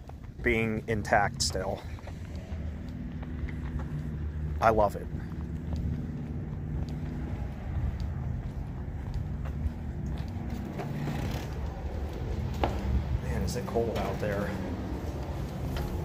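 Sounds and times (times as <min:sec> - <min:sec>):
footsteps on asphalt: 0:00.0 - 0:16.0
low steady rumble: 0:00.0 - 0:16.0.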